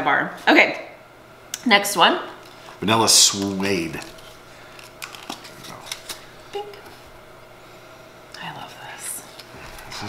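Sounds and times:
plastic packaging clicks and crinkles: 3.2 - 6.9.

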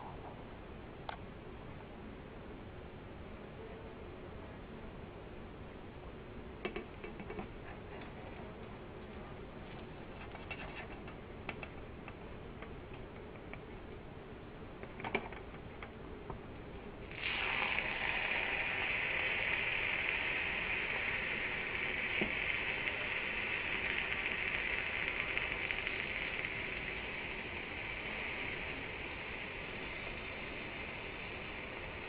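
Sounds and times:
pancake sizzling in pan: 17.1 - 32.0.

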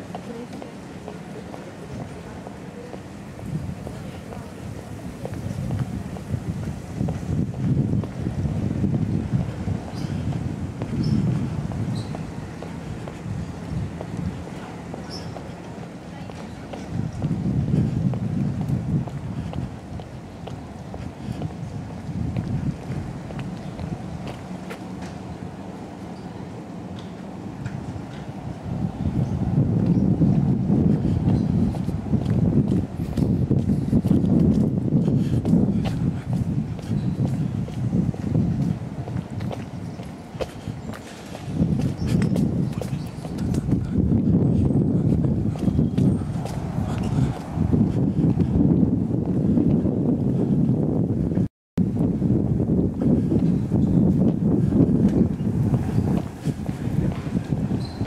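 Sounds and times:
footsteps on cobblestones: 0.0 - 26.2, 27.0 - 58.0.

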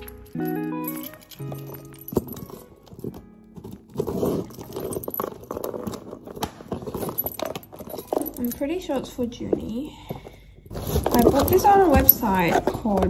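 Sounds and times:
key scraping packing tape: 0.0 - 8.1
keys jangling: 0.0 - 9.6
soft background music: 0.0 - 10.1.

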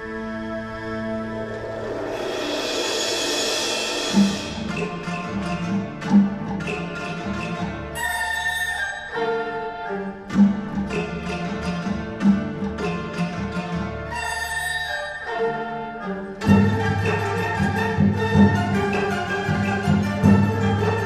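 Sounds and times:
bamboo flutes: 0.0 - 5.7, 7.9 - 10.2, 14.1 - 21.0
plucked strings: 3.6 - 21.0.

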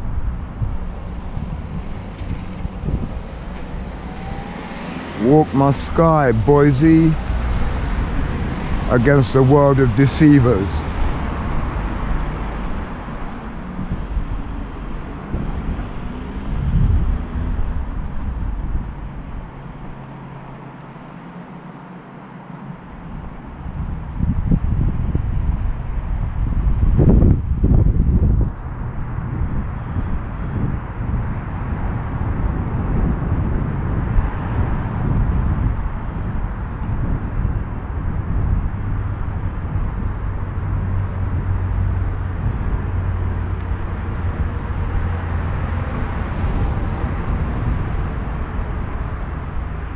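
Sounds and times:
low town rumble: 0.0 - 49.9.

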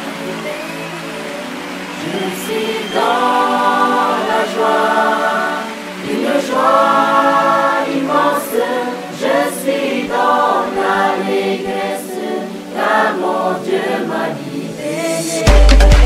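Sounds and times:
choir singing in harmony: 0.0 - 16.0.

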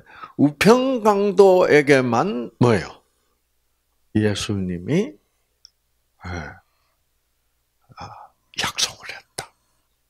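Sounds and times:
man speaking: 0.4 - 3.0, 4.1 - 5.2, 6.2 - 6.6, 7.9 - 9.5
faint click: 5.6 - 5.8.

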